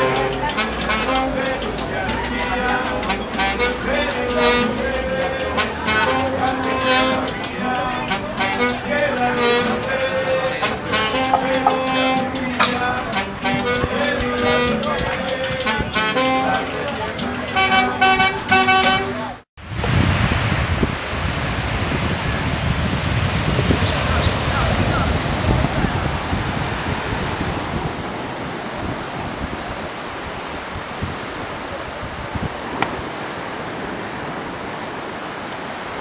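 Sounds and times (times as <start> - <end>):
quick percussive beat: 0.0 - 15.7
held music tones: 0.0 - 19.4
horn blasts: 0.0 - 19.4
street traffic: 0.0 - 19.4, 21.7 - 28.9
surf and wind: 0.0 - 36.0.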